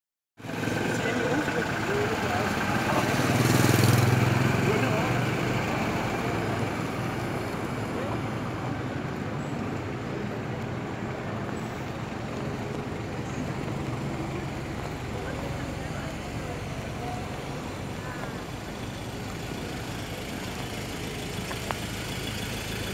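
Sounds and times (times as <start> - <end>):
vehicles driving past: 0.4 - 22.9.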